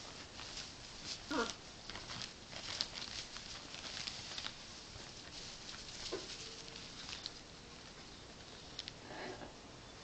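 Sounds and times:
wings and feet rustling on cloth: 0:00.0 - 0:07.9.

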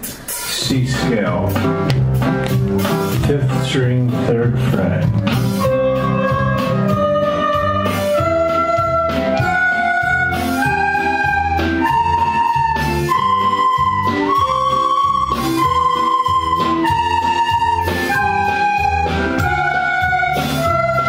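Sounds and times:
recorders playing a scale: 0:00.5 - 0:21.0.

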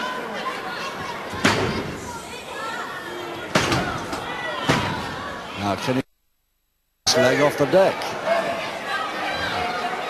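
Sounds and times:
crowd chatter and shouts: 0:00.0 - 0:06.0, 0:07.1 - 0:10.0.

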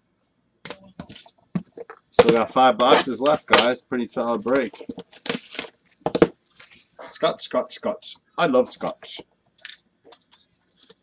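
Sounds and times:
wrapper crinkling and tearing: 0:04.3 - 0:06.9.

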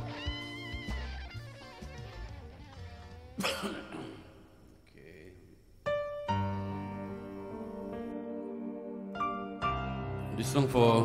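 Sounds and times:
guitar backing music: 0:00.0 - 0:03.4, 0:05.9 - 0:11.0
man coughing: 0:03.4 - 0:04.5.

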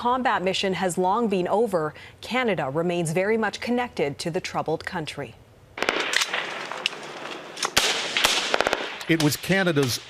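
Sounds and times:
background hiss: 0:05.3 - 0:10.0
gunshots: 0:05.8 - 0:10.0.

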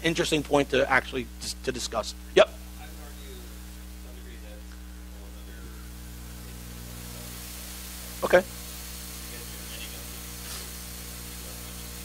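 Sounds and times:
low electrical mains hum: 0:00.0 - 0:12.0
steady hiss: 0:00.0 - 0:12.0.

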